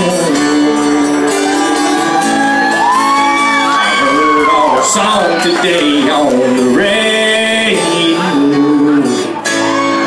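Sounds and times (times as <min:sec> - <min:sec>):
acoustic guitar chords: 0:00.0 - 0:10.0
wordless sung vocal: 0:03.8 - 0:09.4.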